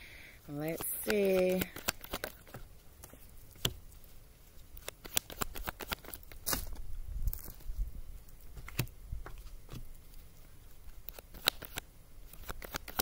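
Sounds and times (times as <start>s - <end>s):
cards being shuffled: 0.6s - 3.8s, 4.8s - 6.8s, 10.9s - 13.0s.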